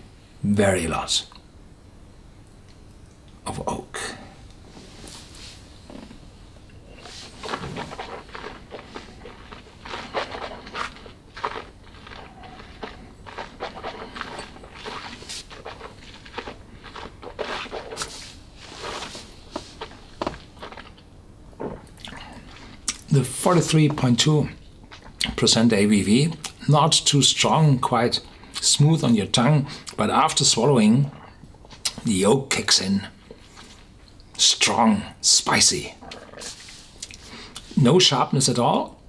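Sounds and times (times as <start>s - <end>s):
wet mouth clicks and lip smacks: 36.0s - 37.7s.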